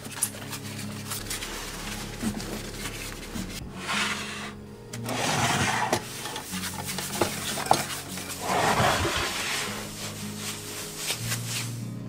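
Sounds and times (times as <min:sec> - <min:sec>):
soft background music: 0:00.0 - 0:12.0
cloth scrubbing wooden counter: 0:05.1 - 0:11.8.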